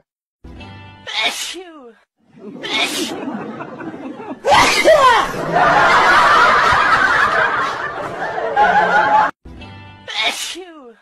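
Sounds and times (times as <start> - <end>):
person sneezing: 1.1 - 1.7, 2.6 - 3.3, 10.1 - 10.8.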